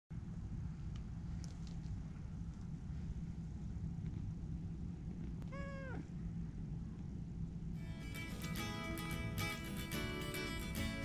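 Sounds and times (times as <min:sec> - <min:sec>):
cat meowing: 0:05.4 - 0:06.2.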